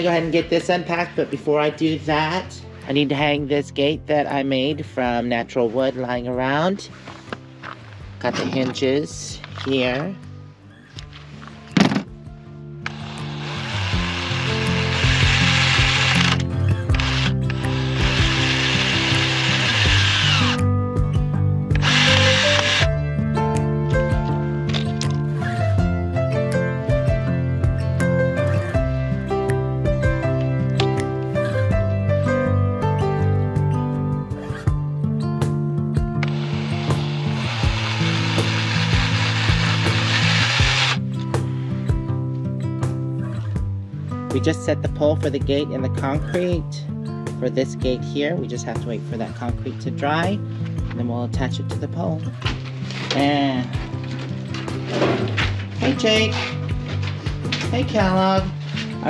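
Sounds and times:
background music: 0.0 - 59.0
cordless drill driving screws: 12.8 - 20.6, 21.8 - 22.9, 36.2 - 41.0.

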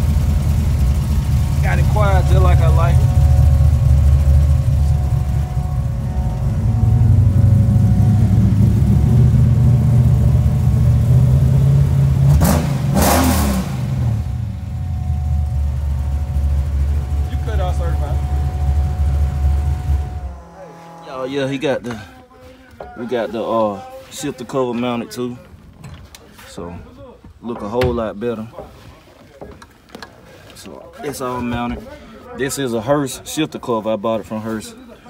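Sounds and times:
engine idling rumble: 0.0 - 12.9, 13.5 - 20.9.

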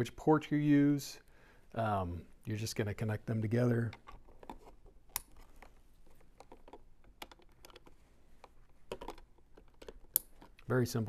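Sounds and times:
cable handling noise: 3.8 - 10.7.

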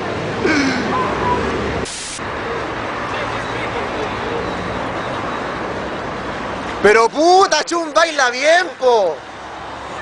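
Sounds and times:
steady outdoor hiss: 0.0 - 4.5
burst of sharp hiss: 1.8 - 2.2.

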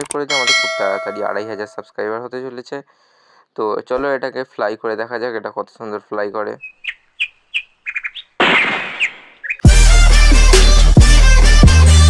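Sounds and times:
small birds chirping: 6.4 - 9.7
loud electronic music with beat: 9.6 - 12.0.

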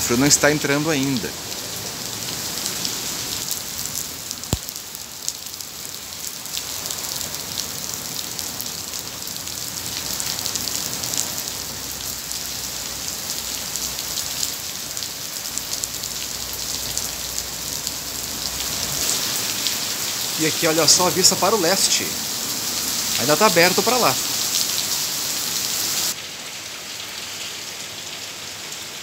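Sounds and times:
rain hiss and patter: 0.0 - 29.0.

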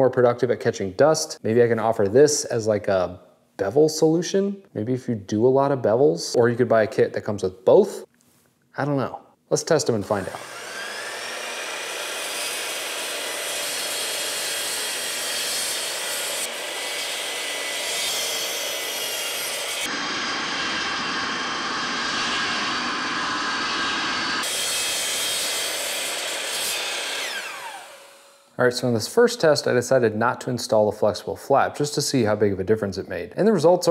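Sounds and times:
shop vacuum running: 10.0 - 28.5
miter saw cutting wood: 10.1 - 28.5.

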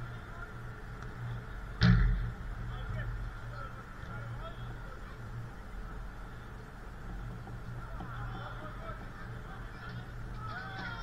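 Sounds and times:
steady low hum: 0.0 - 11.0
distant shouts of players: 7.8 - 11.0.

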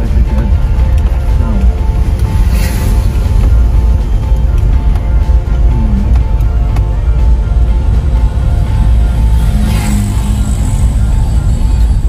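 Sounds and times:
background music: 0.0 - 12.0
car driving rumble: 0.0 - 12.0.

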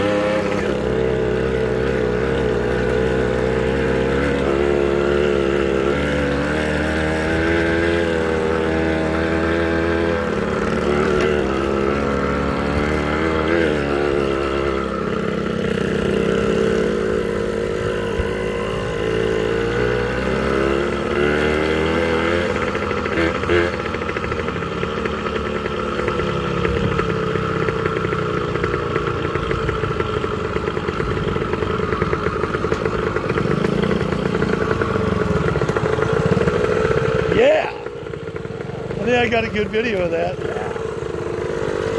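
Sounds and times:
small motorcycle engine running: 0.0 - 41.9.

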